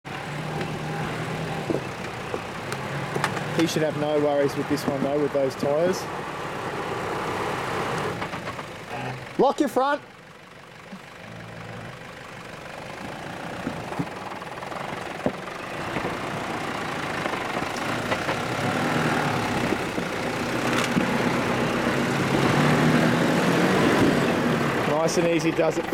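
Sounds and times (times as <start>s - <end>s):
engine running at low revs: 0.0s - 25.9s.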